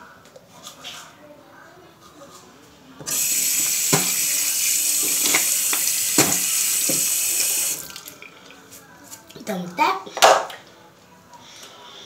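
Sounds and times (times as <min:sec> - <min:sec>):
sink tap running: 0:03.1 - 0:08.2.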